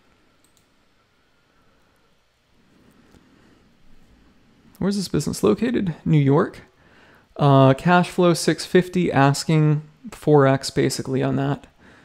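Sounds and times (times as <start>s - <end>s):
faint computer mouse clicks: 0.4s - 0.7s.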